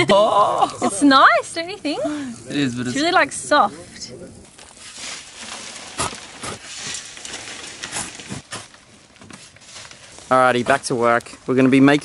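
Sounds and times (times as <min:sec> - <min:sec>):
shovels scraping stony clay: 0:04.7 - 0:08.8.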